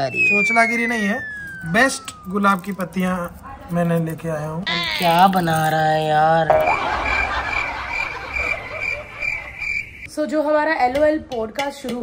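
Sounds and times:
frog-like chirping calls: 8.0 - 10.1.

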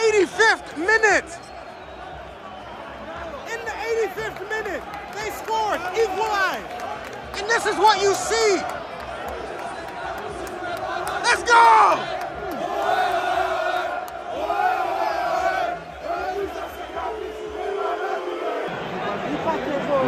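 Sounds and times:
stadium crowd chanting: 0.0 - 20.0.

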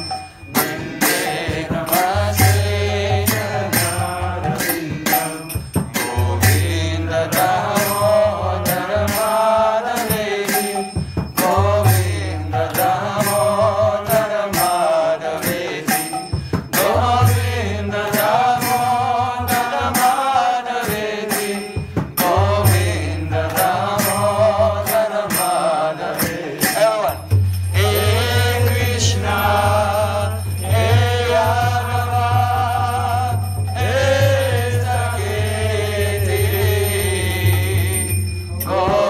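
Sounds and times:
man chanting prayers: 0.0 - 39.0
sharp percussive strikes: 0.0 - 39.0.

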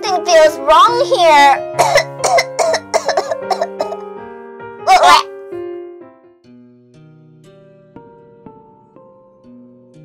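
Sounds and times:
background music with held notes: 0.0 - 10.0
person coughing: 1.8 - 4.0, 4.9 - 5.2
burst of voice: 4.9 - 5.3.

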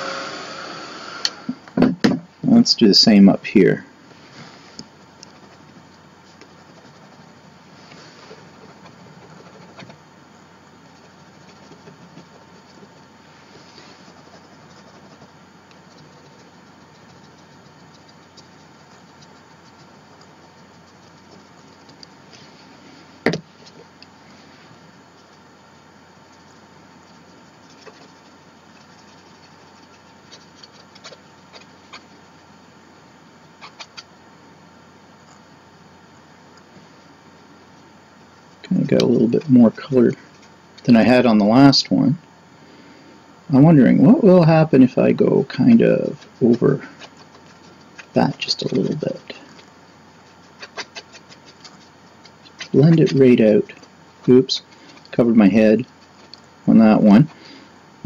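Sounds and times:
room hum with thin tone: 0.0 - 58.0
marker scratching on paper: 5.3 - 10.0, 10.8 - 22.6, 26.3 - 32.3, 33.6 - 34.1, 45.5 - 57.4.

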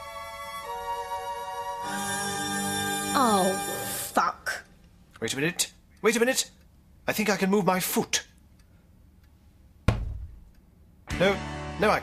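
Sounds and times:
dull thump: 9.8 - 10.5.

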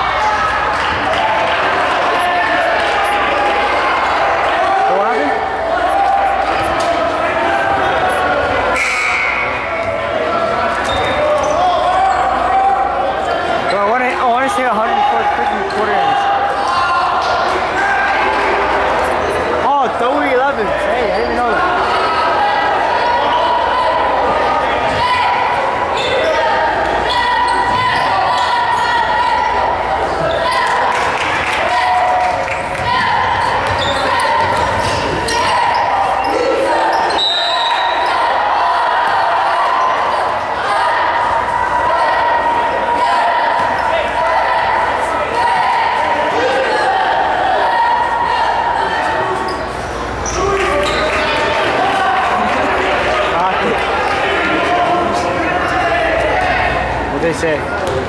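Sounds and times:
spectator chatter echoing: 0.0 - 58.0
referee whistle: 8.7 - 9.6, 35.3 - 38.2.

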